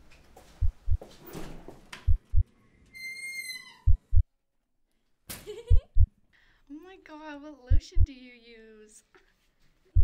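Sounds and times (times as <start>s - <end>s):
heartbeat thumps: 0.6s - 1.1s, 2.0s - 2.4s, 3.9s - 4.3s, 5.7s - 6.2s, 7.7s - 8.2s.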